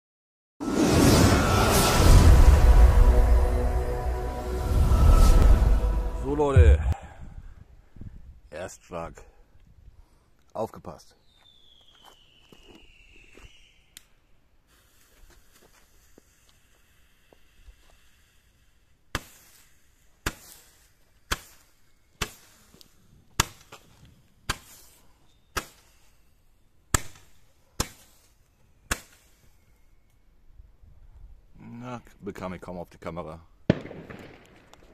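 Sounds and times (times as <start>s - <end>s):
faint falling whistle: 11.4s - 14.0s
firework bangs: 33.7s - 34.9s.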